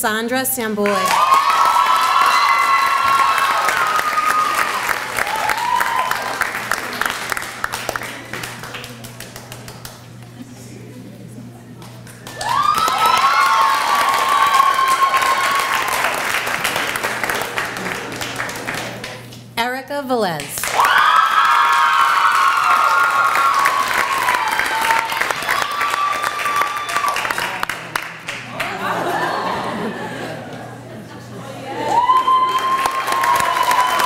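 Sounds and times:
high-pitched held cheers: 0:00.8 - 0:06.6, 0:12.3 - 0:16.4, 0:20.7 - 0:27.6, 0:31.7 - 0:34.0
audience applauding: 0:00.8 - 0:10.4, 0:11.8 - 0:19.4, 0:20.6 - 0:30.6, 0:31.6 - 0:34.0.

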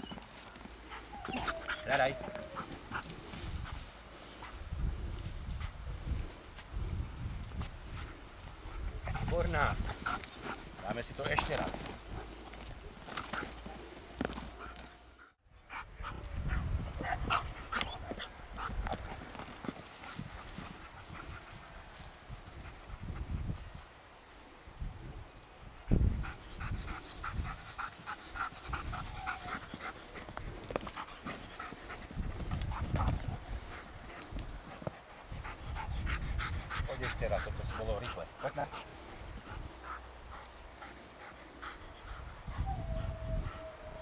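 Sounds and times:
rustling dry grass: 0:00.0 - 0:15.1, 0:16.3 - 0:25.2, 0:25.9 - 0:36.9
dog panting: 0:07.6 - 0:21.8, 0:25.9 - 0:43.6.

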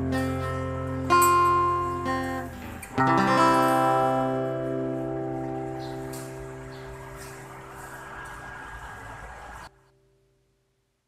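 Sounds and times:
electric guitar chord ringing: 0:00.0 - 0:09.6.

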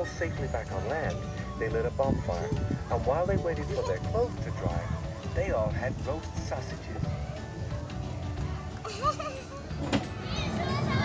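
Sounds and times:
outdoor background noise: 0:00.0 - 0:11.0
children's high gliding voices: 0:08.8 - 0:11.0.

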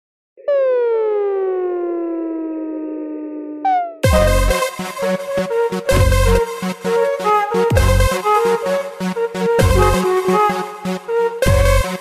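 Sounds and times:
higher falling synth tone: 0:00.4 - 0:08.6
synthesizer tone sliding down: 0:00.4 - 0:11.9.

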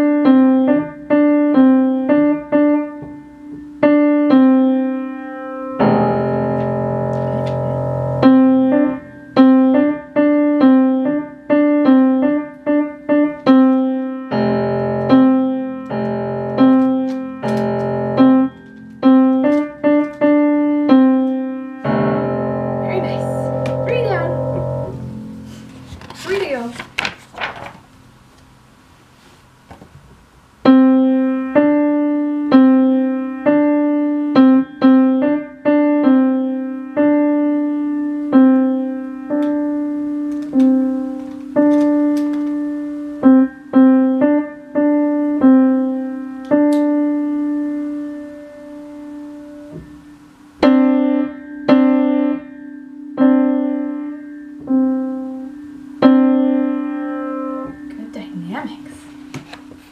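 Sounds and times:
upright piano single notes: 0:00.0 - 0:27.0, 0:30.6 - 0:59.9.

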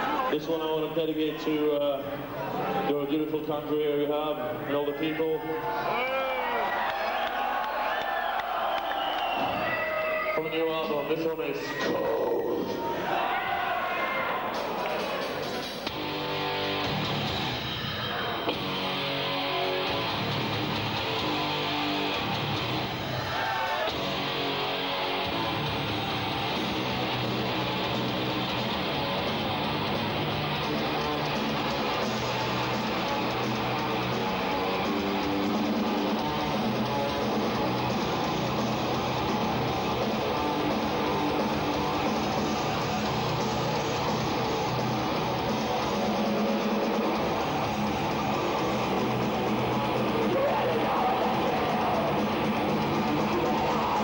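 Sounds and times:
metal band playing live: 0:14.5 - 0:54.0.

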